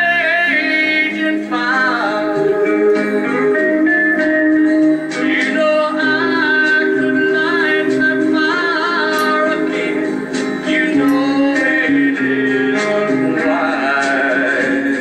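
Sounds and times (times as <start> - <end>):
man singing country song: 0.0 - 3.4, 5.1 - 15.0
backing track music: 0.0 - 15.0.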